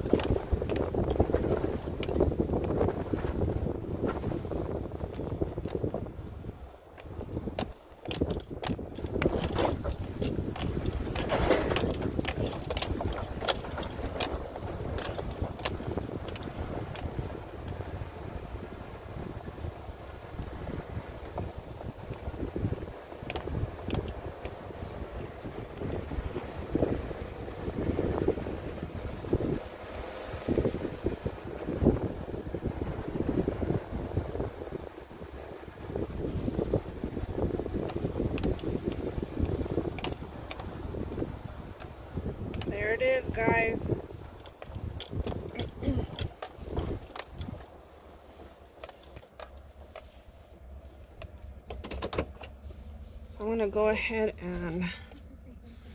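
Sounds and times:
rattles and knocks over bumps: 0.0s - 55.9s
vehicle engine and tyres rumbling: 0.0s - 55.9s
wind on microphone: 0.0s - 55.9s.

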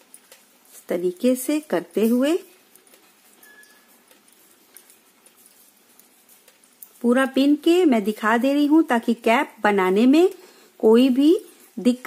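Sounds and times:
knitting needles clicking: 0.0s - 7.0s.

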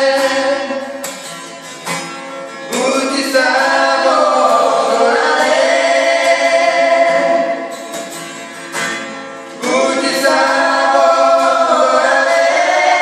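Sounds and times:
woman and man singing: 0.0s - 1.0s, 2.7s - 7.8s, 9.6s - 13.0s
strummed acoustic guitar: 0.0s - 13.0s.

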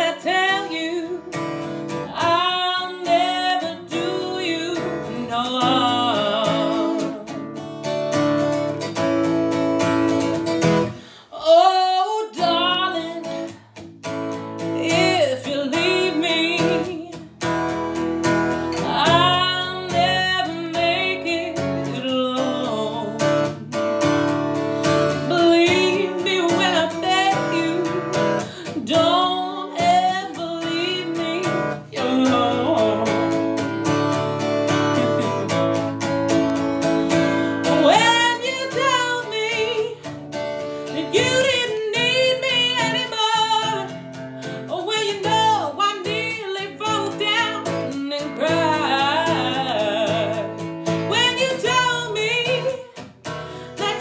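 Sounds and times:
woman singing with vibrato: 0.0s - 7.7s, 10.1s - 13.6s, 14.6s - 17.3s, 18.5s - 35.9s, 36.8s - 54.0s
strummed acoustic guitar: 0.0s - 54.0s.

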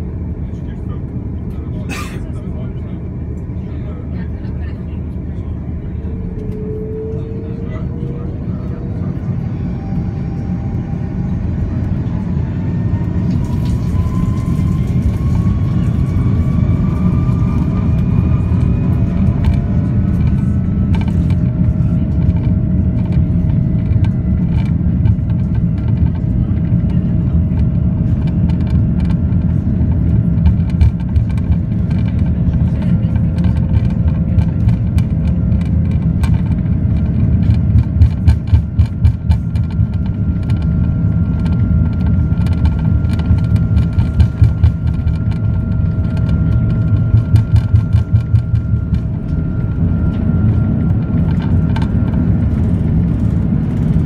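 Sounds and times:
wheels rattling over runway: 3.6s - 54.0s
jet engines spooling up: 5.1s - 22.9s.

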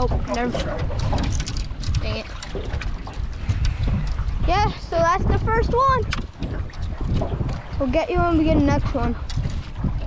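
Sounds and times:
wind and choppy water: 0.0s - 10.0s.

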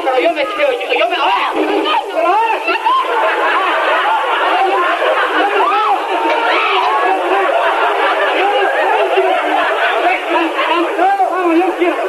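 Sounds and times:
people crying out and shouting: 0.0s - 12.0s.

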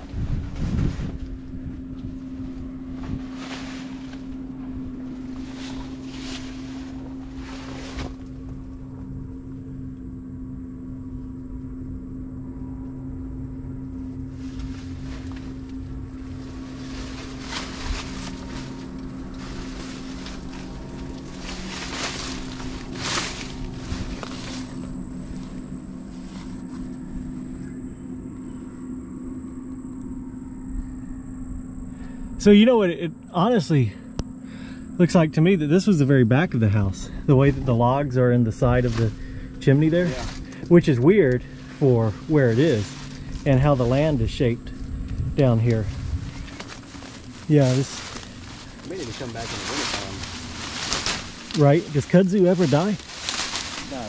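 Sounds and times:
rustles and scuffs: 0.0s - 8.7s, 14.3s - 27.3s, 38.6s - 44.1s, 45.5s - 54.0s
motorboat engine droning: 0.0s - 54.0s.

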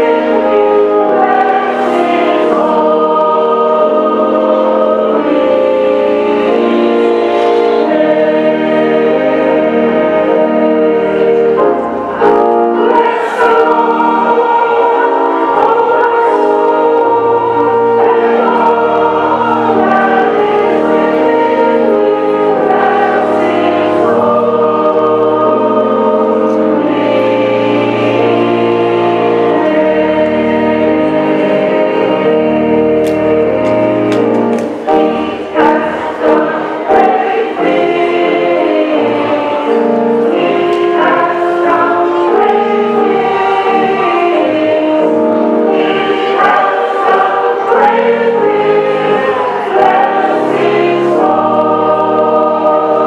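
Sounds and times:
choir singing a hymn: 0.0s - 53.0s.

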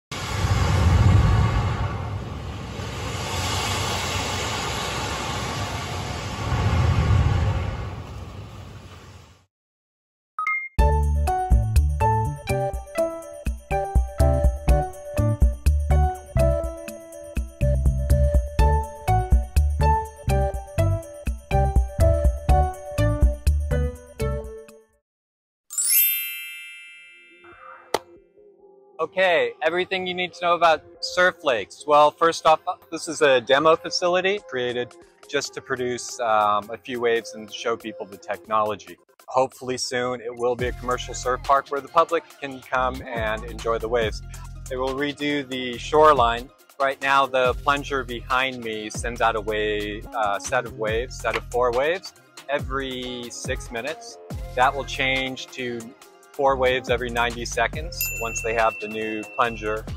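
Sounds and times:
churning waves rushing: 0.2s - 8.6s
bell-like chime: 25.7s - 27.8s, 58.0s - 59.9s.

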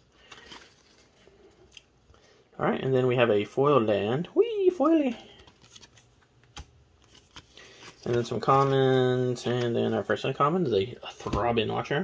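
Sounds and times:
cards sliding against each other: 5.3s - 8.2s.

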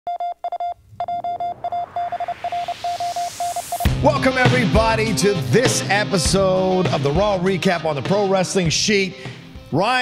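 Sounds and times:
electronic beeps: 0.1s - 4.0s
whooshing noise rising in pitch: 0.8s - 5.2s
loud theme music: 1.7s - 10.0s.

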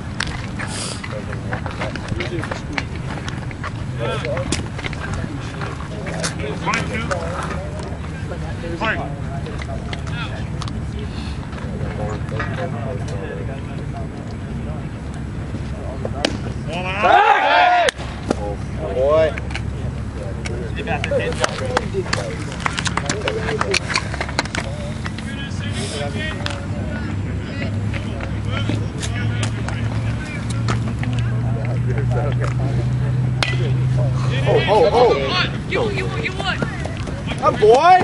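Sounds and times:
low outdoor rumble: 0.0s - 38.0s
person shouting: 17.0s - 17.9s
metal bat hitting ball: 33.4s - 33.7s
sharp crack: 33.4s - 33.7s.

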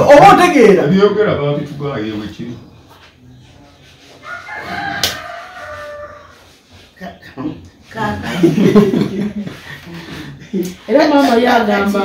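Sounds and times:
rooster crowing: 4.2s - 6.7s.

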